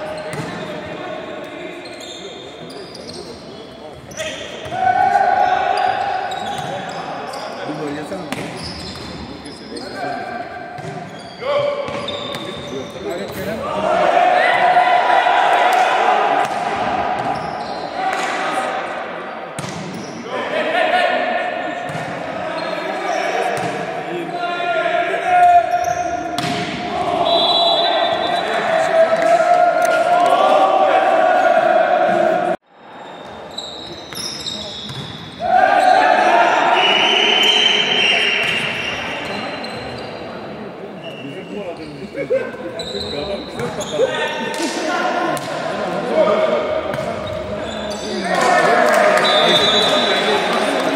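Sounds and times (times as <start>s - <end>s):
crowd shouting and chanting: 4.1s - 6.9s, 13.2s - 19.3s, 20.2s - 33.2s, 35.4s - 39.1s.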